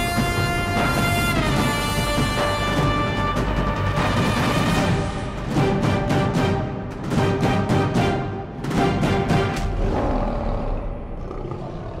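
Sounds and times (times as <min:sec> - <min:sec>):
lion roar: 0:09.6 - 0:12.0.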